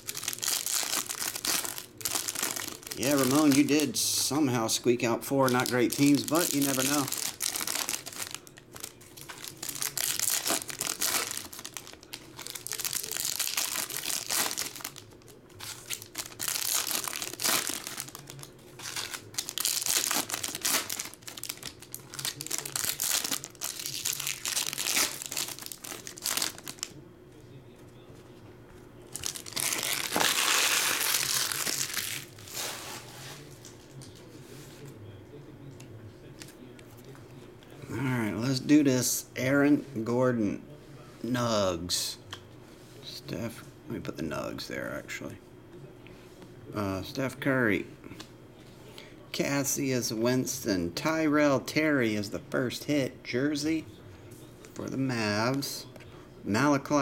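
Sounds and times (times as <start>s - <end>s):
foil wrappers tearing and crinkling: 0.0s - 4.0s, 5.4s - 26.9s, 29.1s - 34.1s.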